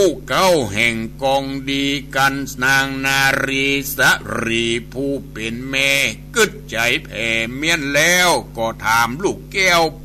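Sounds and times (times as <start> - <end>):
man chanting melodically: 0.0 - 10.0
steady low hum: 0.0 - 10.0.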